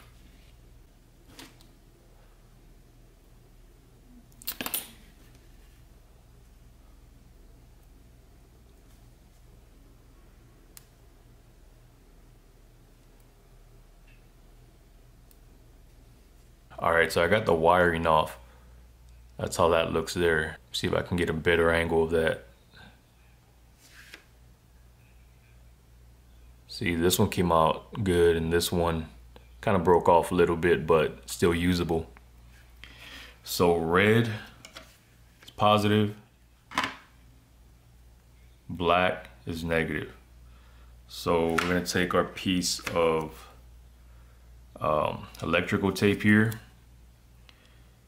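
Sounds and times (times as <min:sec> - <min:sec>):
steady low hum: 0:00.0 - 0:48.0.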